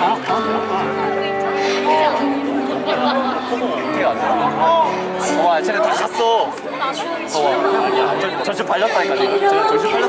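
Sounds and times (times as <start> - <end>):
woman singing into a microphone: 0.0 - 5.4, 6.7 - 10.0
audience chatter: 0.0 - 10.0
backing music: 0.0 - 10.0.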